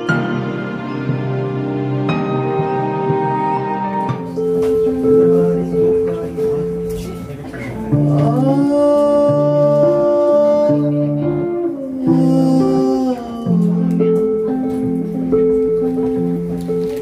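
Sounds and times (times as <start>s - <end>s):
electric guitar riff: 0.0s - 17.0s.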